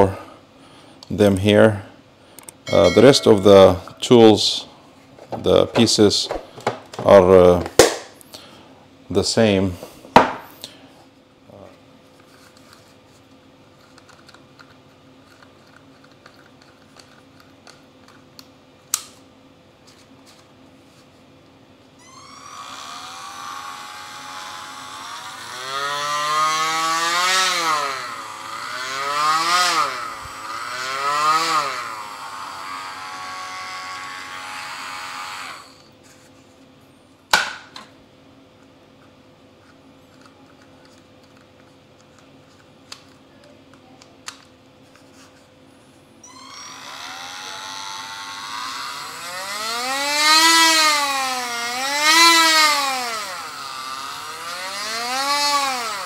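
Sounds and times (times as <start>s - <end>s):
rotary tool motor whine: 22.0s - 36.0s, 46.2s - 56.0s.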